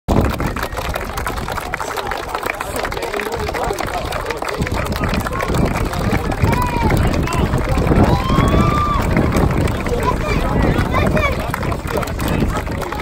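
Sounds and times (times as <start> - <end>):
children clapping: 0.1 - 13.0
children calling out and chattering: 7.8 - 12.5.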